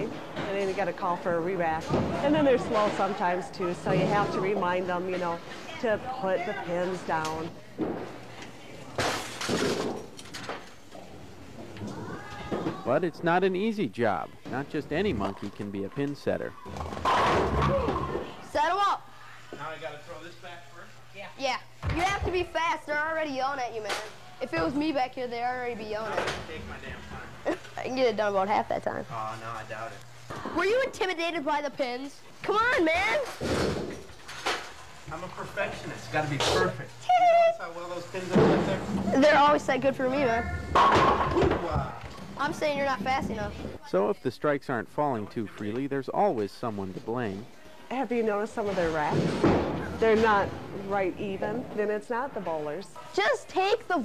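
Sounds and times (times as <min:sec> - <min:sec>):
bowling pins crashing: 0:16.7 - 0:18.4, 0:40.3 - 0:43.8
bowling ball rolling on wooden lane: 0:38.3 - 0:43.8.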